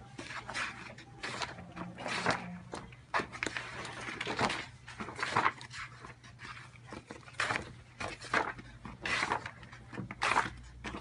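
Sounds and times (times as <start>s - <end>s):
paper pages flipping with swish: 0.2s - 11.0s.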